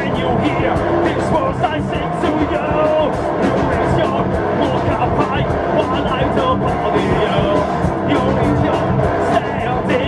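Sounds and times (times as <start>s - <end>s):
drum and cymbal hits: 0.0s - 10.0s
rock band playing live: 0.0s - 10.0s
singer's vocals: 0.0s - 10.0s.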